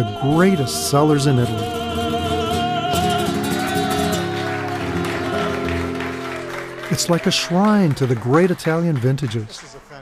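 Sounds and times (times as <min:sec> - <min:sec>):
man singing operatic note: 0:00.0 - 0:06.0
instrumental accompaniment: 0:00.0 - 0:07.7.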